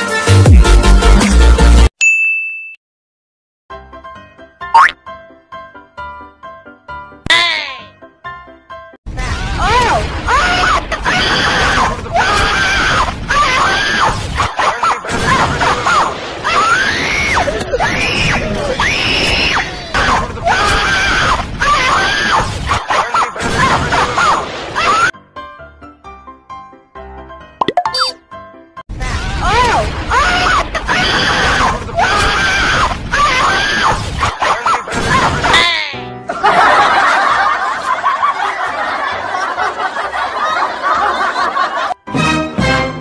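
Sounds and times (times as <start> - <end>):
bell-like ding: 2.0 - 2.8.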